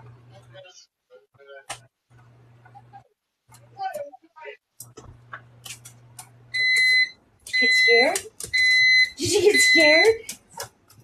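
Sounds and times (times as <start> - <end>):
electronic alarm beeping: 6.5 - 10.2.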